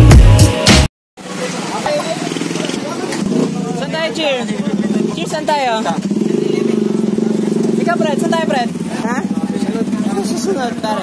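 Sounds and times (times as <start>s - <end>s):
vehicle engine running: 1.4s - 11.0s.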